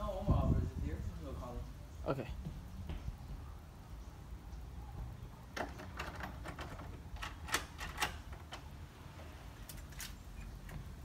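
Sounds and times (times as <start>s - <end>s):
metal door lock clicks and rattles: 5.5s - 8.8s.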